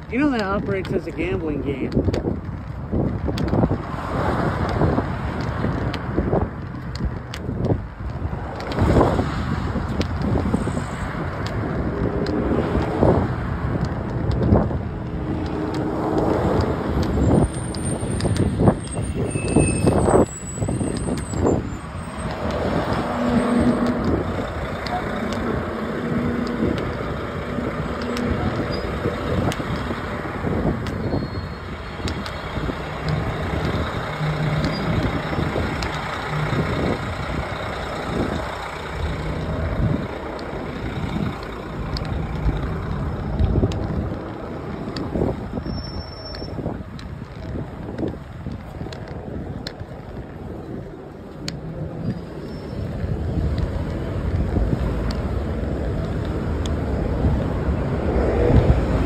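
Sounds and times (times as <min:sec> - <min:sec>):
large vehicle engine hum: 0:00.0 - 0:59.0
road traffic rumble: 0:00.0 - 0:59.0.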